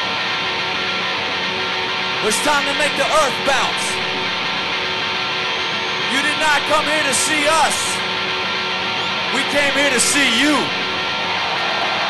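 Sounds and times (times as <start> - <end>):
electric guitar: 0.0 - 12.0.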